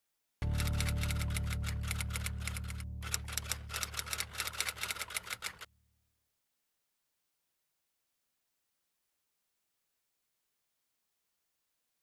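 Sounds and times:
low synth drone: 0:00.4 - 0:05.6
typewriter keystroke clicks: 0:00.6 - 0:05.7.

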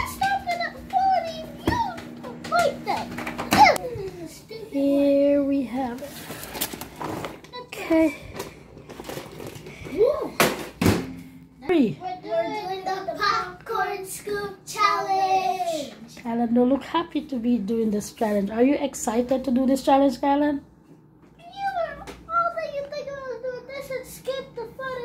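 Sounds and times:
microwave oven humming: 0:00.0 - 0:18.1, 0:18.8 - 0:25.0.

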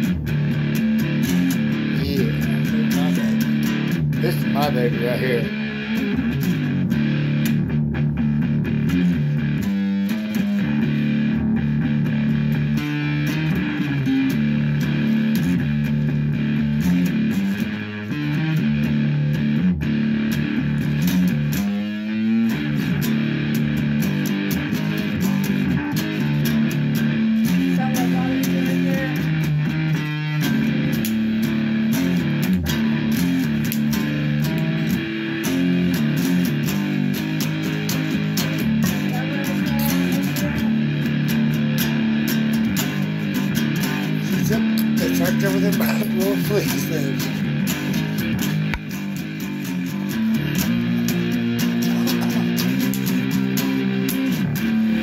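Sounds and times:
electric guitar playing chords: 0:00.0 - 0:55.0.

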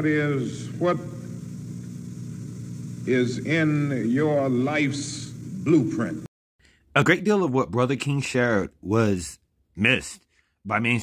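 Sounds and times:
low electrical hum: 0:00.0 - 0:06.3.

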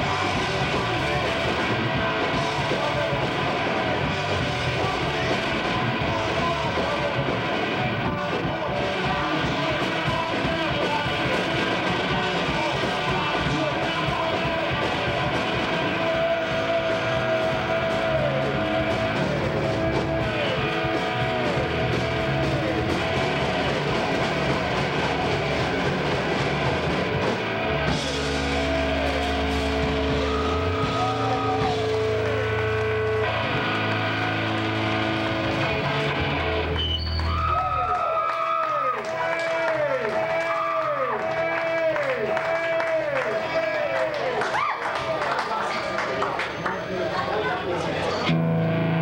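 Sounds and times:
electric guitar with bent notes: 0:00.0 - 0:45.1, 0:45.9 - 0:49.0
bass guitar: 0:00.0 - 0:45.2, 0:48.0 - 0:49.0
drums: 0:00.0 - 0:46.9, 0:48.1 - 0:49.0.

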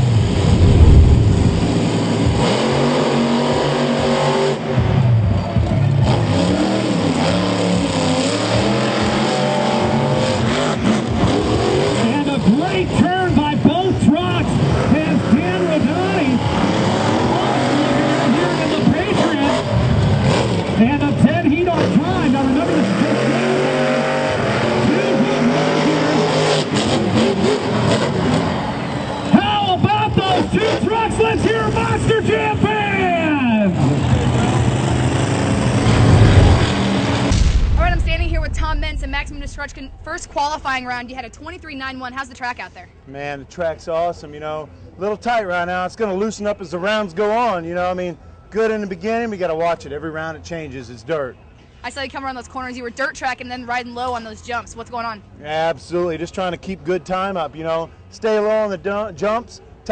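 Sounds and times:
monster truck engines revving: 0:00.0 - 0:42.3.

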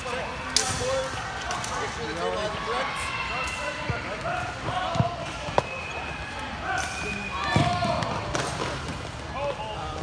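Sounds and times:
people talking in a large hall: 0:00.0 - 0:10.0.

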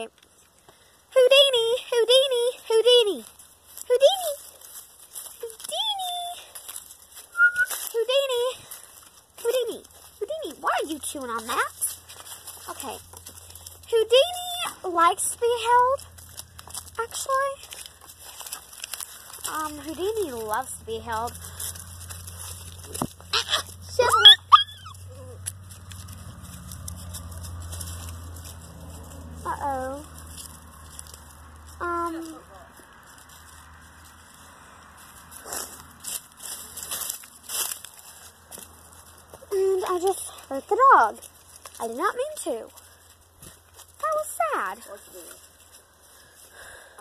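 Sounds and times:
girl calling and cooing: 0:01.1 - 0:04.5, 0:05.3 - 0:06.6, 0:07.3 - 0:08.8, 0:13.8 - 0:16.0, 0:22.9 - 0:25.4, 0:29.4 - 0:30.1, 0:39.4 - 0:41.2
small dog yelping: 0:22.9 - 0:25.4.

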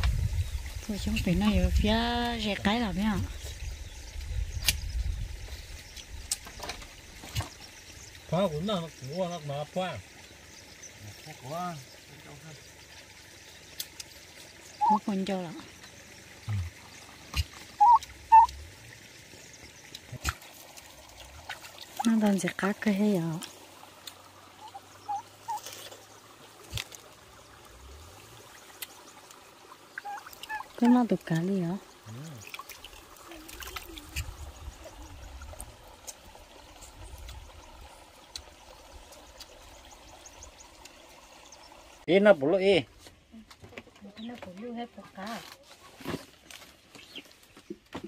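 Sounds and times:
stream trickling over stones: 0:00.0 - 0:48.0.

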